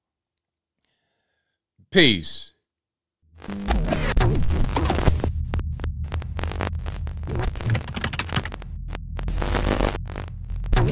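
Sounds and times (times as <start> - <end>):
deep bass hum: 3.4 - 10.9
glitchy clicks and crackles: 3.4 - 10.9.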